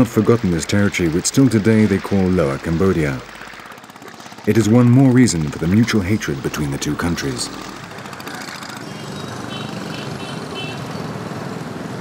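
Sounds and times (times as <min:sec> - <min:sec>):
many small engines running: 0:00.0 - 0:12.0.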